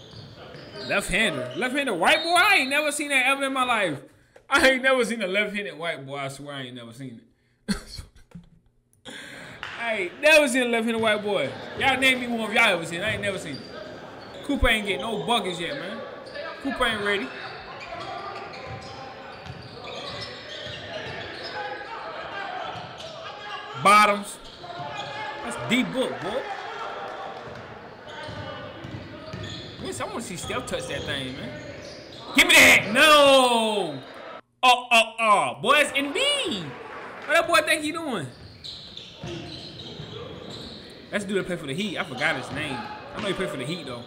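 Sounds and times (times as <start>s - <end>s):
basketball court noise: 0.0s - 3.7s, 9.1s - 34.4s, 35.2s - 44.0s
faint players' voices: 9.6s - 34.4s.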